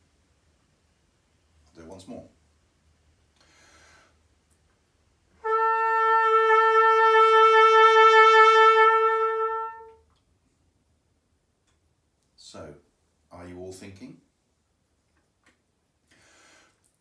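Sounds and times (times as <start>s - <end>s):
intake of breath: 3.4s - 4.2s, 16.1s - 16.8s
trumpet long held note: 5.4s - 10.0s.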